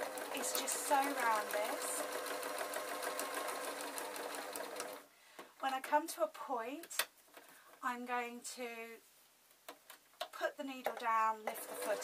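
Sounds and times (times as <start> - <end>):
sewing machine stitching: 0.0 - 5.0, 11.5 - 12.0.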